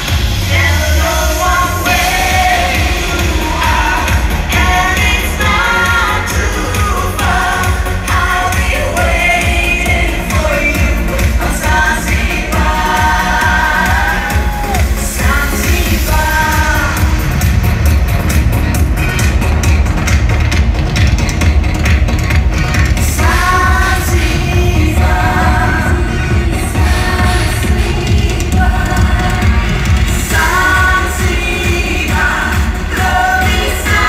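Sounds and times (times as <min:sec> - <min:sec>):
woman singing: 0:00.0 - 0:17.2, 0:23.2 - 0:34.0
disco pop song with heavy bass beat: 0:00.0 - 0:34.0.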